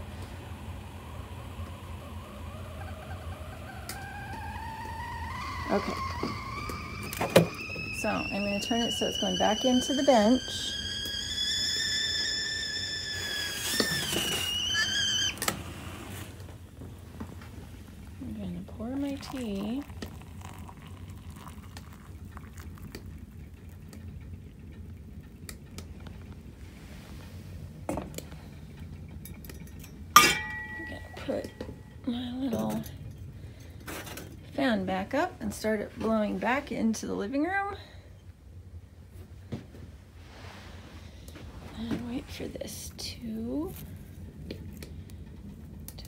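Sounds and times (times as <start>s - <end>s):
kettle whistling: 0.0s - 16.4s, 17.9s - 32.9s
woman speaking: 8.0s - 10.7s, 18.2s - 19.9s, 30.8s - 33.0s, 34.6s - 37.9s, 41.8s - 43.8s
low steady rumble: 15.0s - 46.0s.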